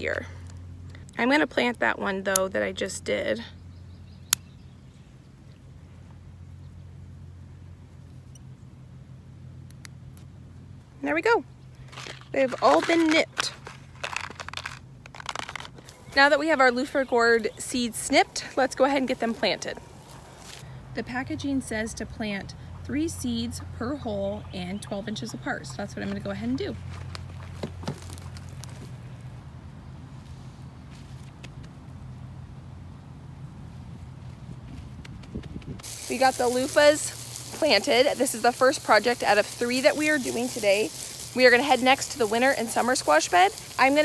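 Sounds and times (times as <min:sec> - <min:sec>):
steady low hum: 0:00.0 - 0:12.6, 0:15.7 - 0:44.0
hands handling small objects: 0:11.8 - 0:16.0
gloved hands rubbing soil: 0:11.9 - 0:20.7, 0:34.3 - 0:44.0.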